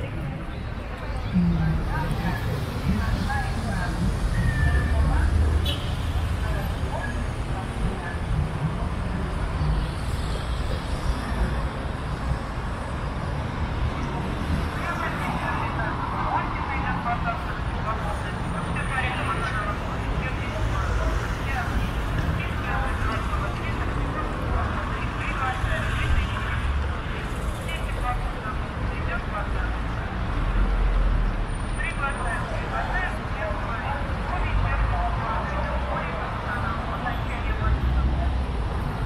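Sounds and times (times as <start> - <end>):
people talking: 0.0 - 5.6, 6.3 - 9.3, 14.8 - 26.9, 27.5 - 30.1, 31.8 - 38.5
low traffic rumble: 0.0 - 39.0.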